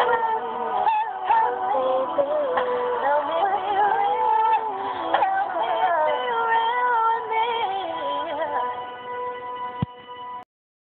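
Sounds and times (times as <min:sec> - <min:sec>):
woman singing: 0:00.0 - 0:09.0
held backing chord: 0:00.0 - 0:10.4.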